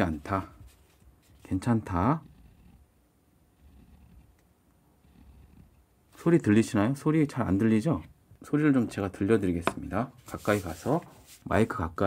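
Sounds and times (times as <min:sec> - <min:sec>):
pen nib scratching paper: 0:00.0 - 0:04.4, 0:05.0 - 0:05.8
paper rustle: 0:10.2 - 0:11.6.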